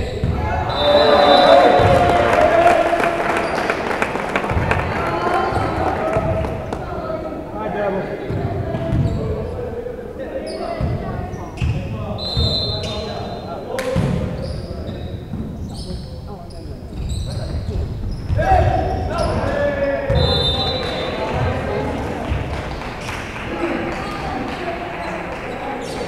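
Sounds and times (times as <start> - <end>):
players shouting: 0.2 - 8.1
sneaker squeaks on hardwood: 8.3 - 9.4, 10.5 - 13.3, 14.0 - 21.1.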